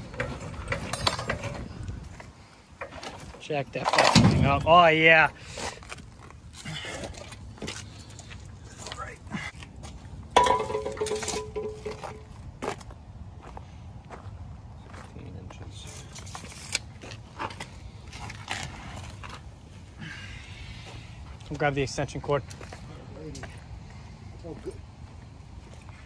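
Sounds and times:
tools clicking and rattling: 0.0s - 2.2s, 10.4s - 12.3s.

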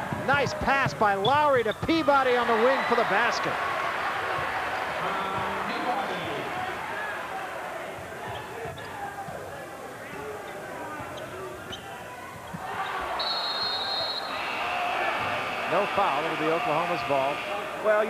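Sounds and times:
crowd din: 2.4s - 18.0s
basketball bouncing on court: 4.3s - 6.4s, 7.9s - 9.4s
shoe squeaks: 8.2s - 9.0s, 10.1s - 14.2s
referee's whistle: 13.1s - 14.6s.

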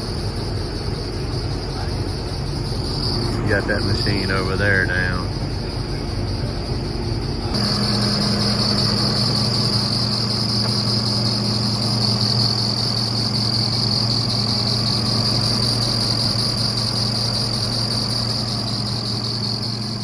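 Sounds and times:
diesel engine running: 0.0s - 20.0s
steady high whine: 0.0s - 20.0s.

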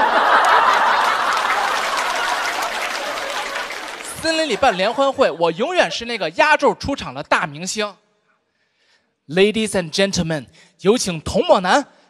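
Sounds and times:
audience clapping: 0.0s - 5.4s
audience laughing: 0.0s - 6.0s.

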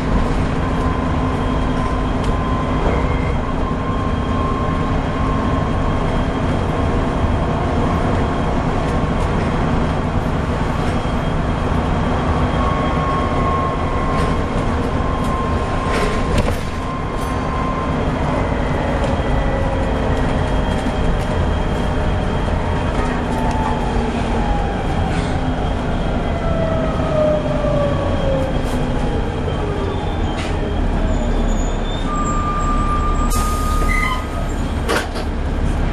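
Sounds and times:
bus engine rumble: 0.0s - 35.9s.

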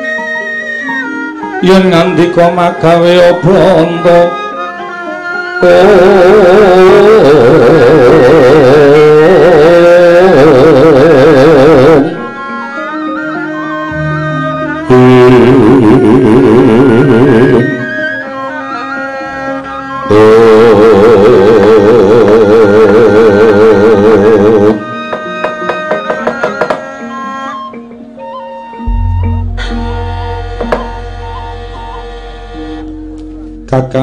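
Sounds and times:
gamelan ringing tones: 13.7s - 15.8s, 25.3s - 33.7s
buzzy warbling tone: 13.9s - 18.0s, 28.8s - 33.2s
low hum: 28.9s - 33.3s.

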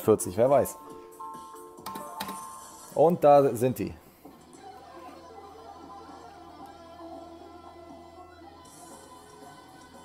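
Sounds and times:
slot machine game music: 0.8s - 3.2s.

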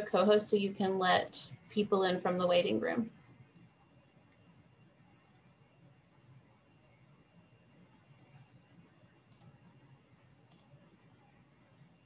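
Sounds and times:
computer mouse clicks: 9.3s - 9.8s, 10.5s - 10.9s.

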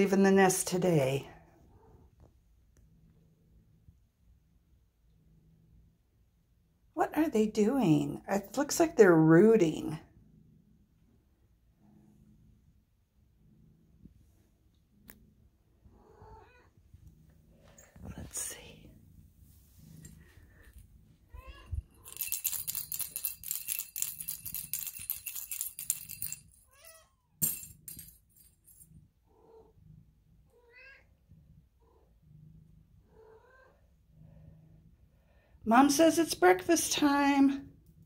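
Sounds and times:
quiet cat meows: 16.0s - 16.7s, 21.3s - 21.7s, 30.5s - 31.1s, 33.1s - 33.8s.

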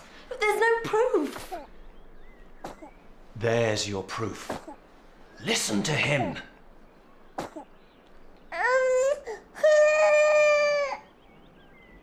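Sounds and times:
baby crying: 8.5s - 11.0s.

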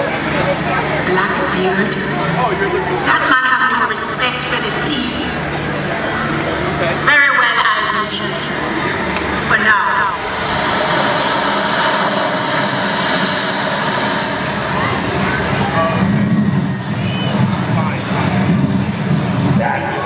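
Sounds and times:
indistinct voices: 0.0s - 20.0s
steady rushing noise: 0.0s - 20.0s
low rumble: 5.6s - 19.8s.

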